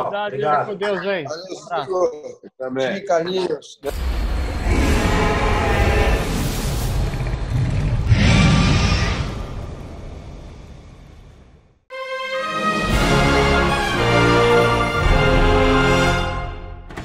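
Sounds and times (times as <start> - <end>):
deep rumble: 3.9 - 11.8.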